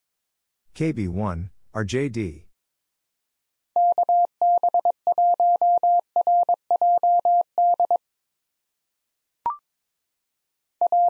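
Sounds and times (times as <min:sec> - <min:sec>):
morse code beeping tone: 0:03.8 - 0:08.0.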